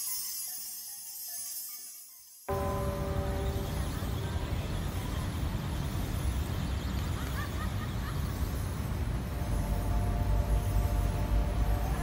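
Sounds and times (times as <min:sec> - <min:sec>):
ringing tones: 0:00.3 - 0:05.1
distant traffic rumble: 0:02.5 - 0:12.0.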